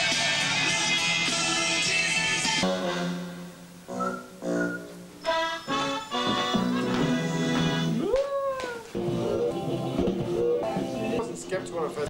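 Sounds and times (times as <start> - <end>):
television music through speaker: 0.0 - 12.0.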